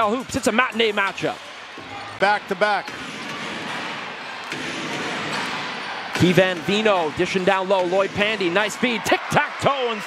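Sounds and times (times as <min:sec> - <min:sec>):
arena crowd noise: 0:00.0 - 0:10.0
basketball bouncing on court: 0:02.8 - 0:08.4.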